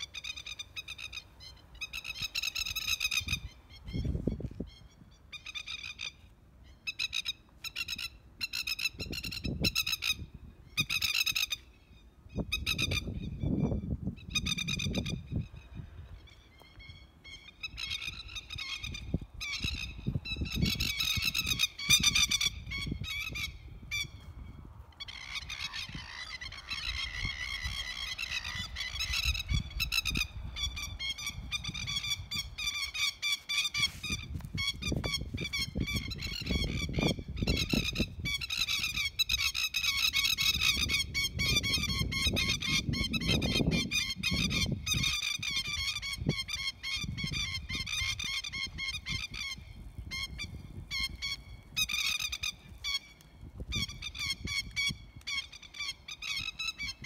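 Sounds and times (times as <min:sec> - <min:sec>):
lapwing alarm calls: 0:00.0 - 0:57.0.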